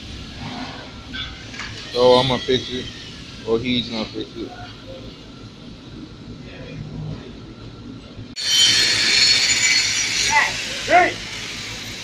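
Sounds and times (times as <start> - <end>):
low shop background sound: 0.0 - 12.0
angle grinder grinding steel: 8.4 - 12.0.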